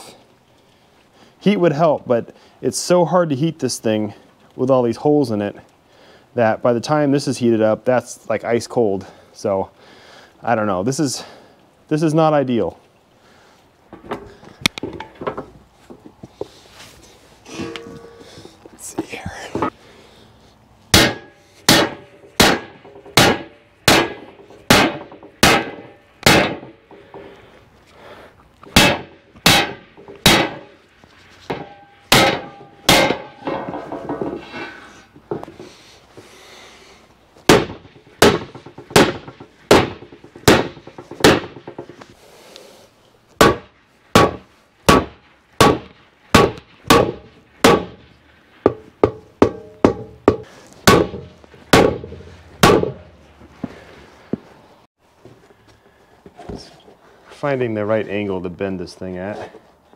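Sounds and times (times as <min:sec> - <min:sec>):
hammer striking steel plate: 0:17.5 - 0:18.6, 0:20.9 - 0:26.8, 0:28.7 - 0:30.8, 0:31.5 - 0:34.4, 0:37.5 - 0:42.0, 0:43.4 - 0:48.0, 0:48.7 - 0:53.1.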